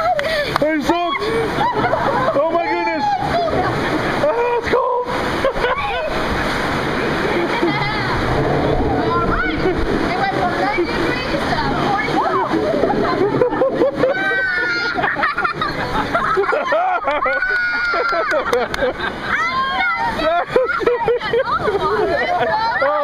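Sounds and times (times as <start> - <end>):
rushing white water: 0.0 - 23.0
voices calling out: 0.0 - 23.0.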